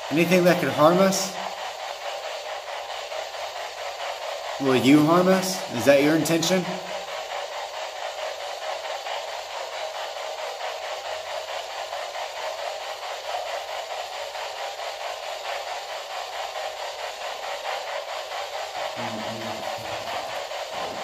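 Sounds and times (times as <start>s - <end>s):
radio static with rapid pulsing: 18.9s - 21.0s.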